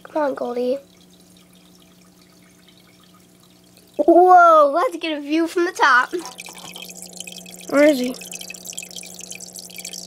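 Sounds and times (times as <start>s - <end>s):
aquarium filter hum: 0.0s - 10.0s
water trickling and dripping: 0.0s - 10.0s.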